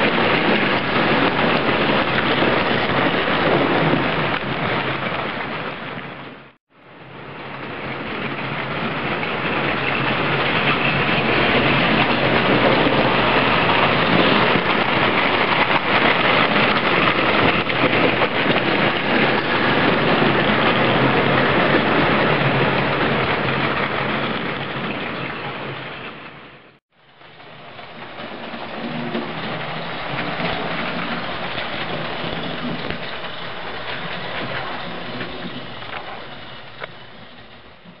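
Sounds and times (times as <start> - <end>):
model train running on rails: 0.0 - 38.0.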